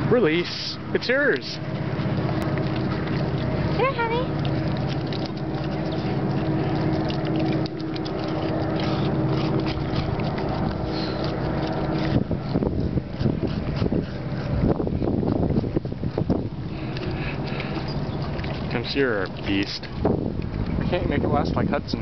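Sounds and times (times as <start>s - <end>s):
motor hum: 0.0s - 22.0s
dog licking and chewing: 2.4s - 20.0s.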